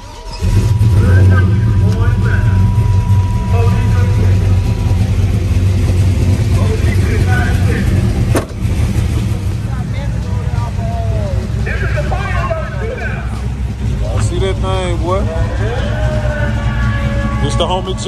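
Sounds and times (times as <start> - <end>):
truck engine starting and idling: 0.0 - 18.0.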